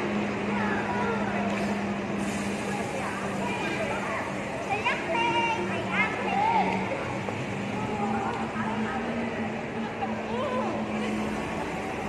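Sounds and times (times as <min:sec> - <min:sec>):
outdoor noise: 0:00.0 - 0:12.0.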